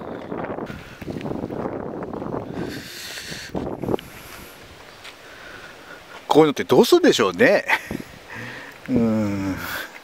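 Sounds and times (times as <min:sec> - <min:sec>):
wind buffeting microphone: 0:00.0 - 0:05.0, 0:07.8 - 0:08.5.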